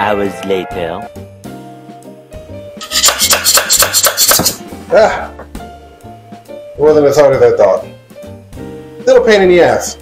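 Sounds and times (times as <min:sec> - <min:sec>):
background music: 0:00.0 - 0:10.0
plastic scraper rasping on metal: 0:02.8 - 0:04.6.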